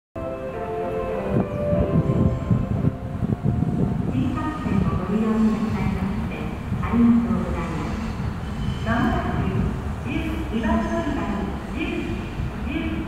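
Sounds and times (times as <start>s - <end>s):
train rumbling: 0.2s - 13.0s.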